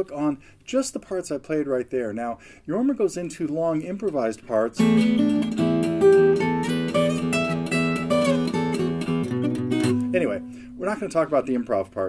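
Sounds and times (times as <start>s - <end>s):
fingerstyle acoustic guitar: 4.8s - 10.8s.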